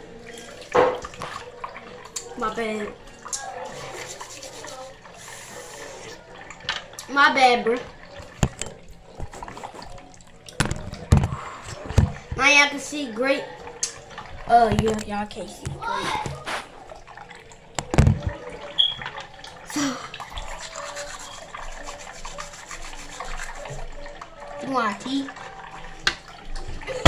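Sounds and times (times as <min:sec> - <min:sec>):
water running from a tap: 0:00.0 - 0:27.0.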